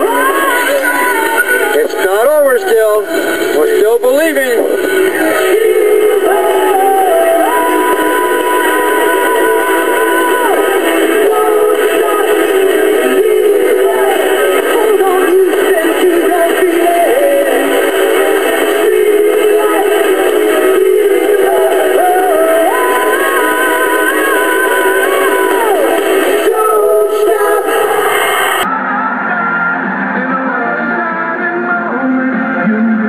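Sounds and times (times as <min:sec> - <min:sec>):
person singing: 0:00.0 - 0:04.0, 0:04.6 - 0:33.0
band backing music: 0:00.0 - 0:28.0.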